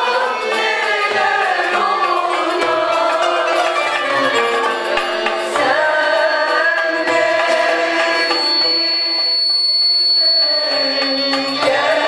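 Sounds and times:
thin high-pitched tone: 4.2s - 12.0s.

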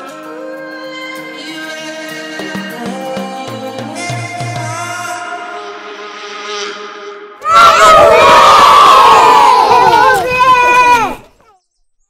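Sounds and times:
children shouting and cheering: 7.4s - 11.6s.

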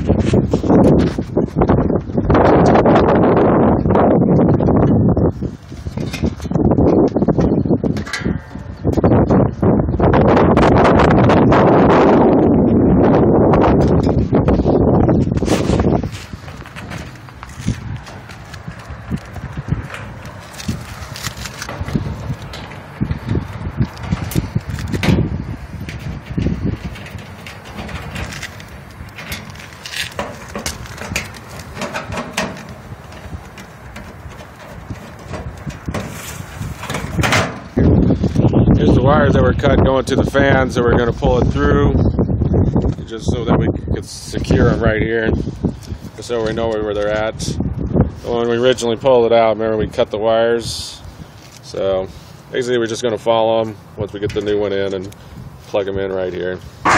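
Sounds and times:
hand tools clicking on sheet metal: 25.8s - 37.6s.

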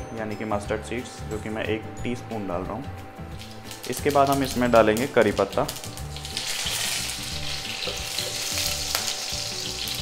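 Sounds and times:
leaves sizzling in hot oil: 3.3s - 10.0s.

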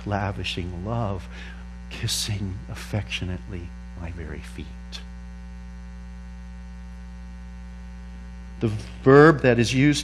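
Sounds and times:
man speaking: 0.0s - 5.1s, 8.6s - 10.0s
electrical mains hum: 0.0s - 10.0s.

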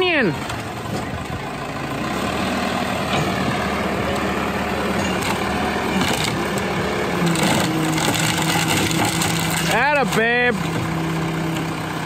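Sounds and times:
diesel engine running under load: 0.0s - 12.0s.

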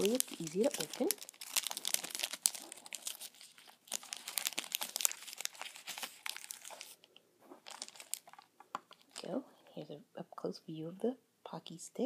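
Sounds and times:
plastic snack pack crinkling: 0.0s - 9.4s.

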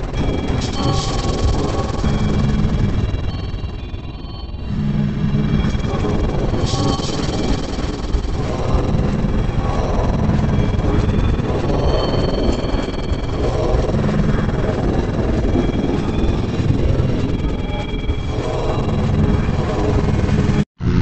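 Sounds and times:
garbled music and voice mix: 0.0s - 21.0s
low rumble: 0.0s - 21.0s.

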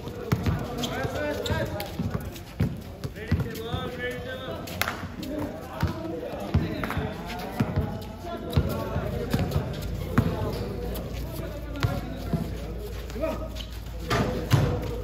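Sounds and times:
basketball bouncing on concrete: 0.0s - 4.2s, 5.4s - 11.0s, 11.7s - 12.6s, 14.1s - 15.0s.

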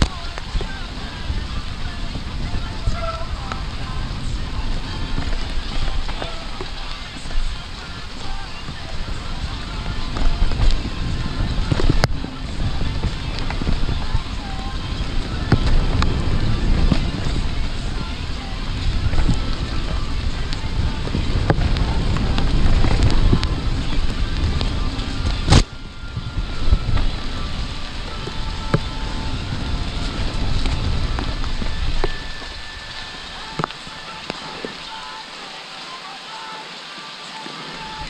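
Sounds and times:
bike rattles and clicks: 0.0s - 35.0s
bike tyres rumbling on dirt: 0.0s - 35.4s
wind on microphone: 0.0s - 35.8s.

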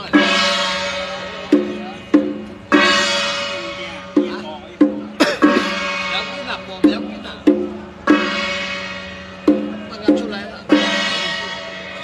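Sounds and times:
ringing percussion strikes: 0.0s - 12.0s.

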